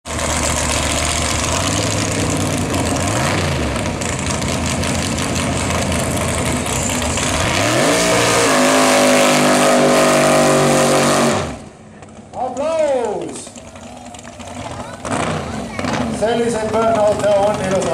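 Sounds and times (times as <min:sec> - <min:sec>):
car engine revving: 0:00.1 - 0:12.2, 0:13.5 - 0:17.9.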